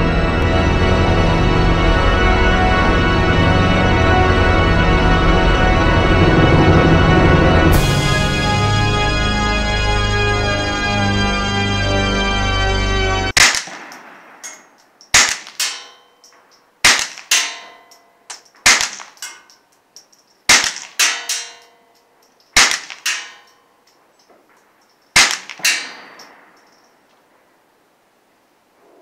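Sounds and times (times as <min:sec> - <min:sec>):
organ music: 0:00.0 - 0:13.4
suppressed pistol shots: 0:13.4 - 0:15.9, 0:16.8 - 0:17.7, 0:18.6 - 0:19.4, 0:20.5 - 0:21.4, 0:22.6 - 0:23.4, 0:25.2 - 0:26.7.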